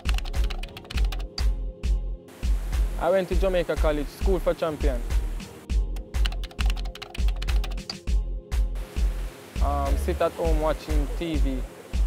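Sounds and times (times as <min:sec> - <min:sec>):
keyboard typing clicks: 0:00.0 - 0:01.4, 0:06.0 - 0:08.0
background music with bass beat: 0:00.2 - 0:10.3.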